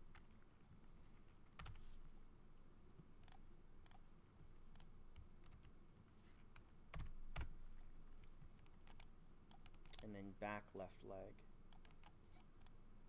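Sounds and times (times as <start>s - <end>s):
computer keyboard keystrokes: 6.5s - 7.5s.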